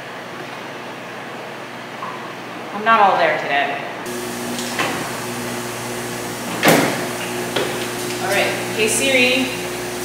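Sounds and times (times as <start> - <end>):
machine hum: 4.0 - 10.0
washer door shutting with thud: 6.5 - 7.8.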